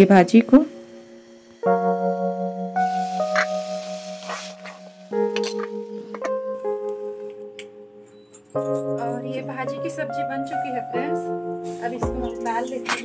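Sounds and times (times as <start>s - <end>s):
bell-like keyboard chords: 4.8s - 13.0s.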